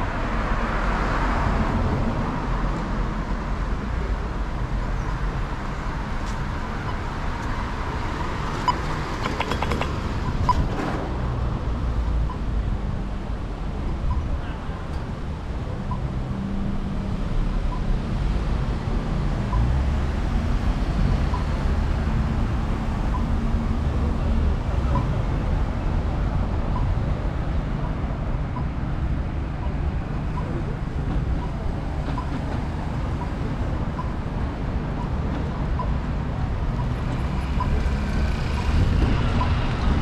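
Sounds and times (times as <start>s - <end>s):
car engines and tyres rumbling: 0.0s - 40.0s
pedestrian crossing signal ticking: 8.1s - 10.7s, 12.1s - 12.7s, 14.0s - 14.4s, 15.8s - 16.3s, 19.5s - 19.8s, 21.2s - 27.1s, 29.6s - 39.7s.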